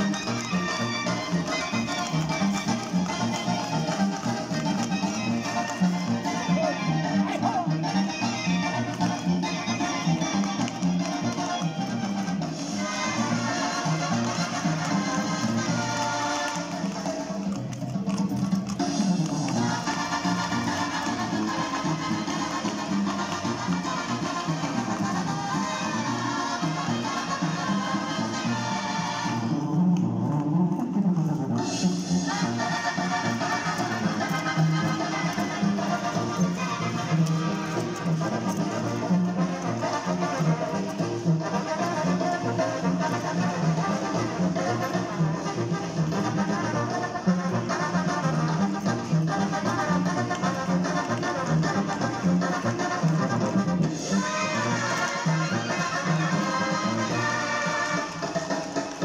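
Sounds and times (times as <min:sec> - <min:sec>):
brass band music: 0:00.0 - 0:59.0
trumpets and trombones: 0:00.0 - 0:59.0.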